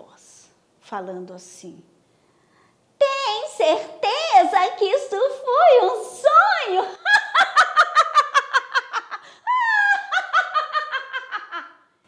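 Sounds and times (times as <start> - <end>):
woman cackling: 6.8 - 11.9.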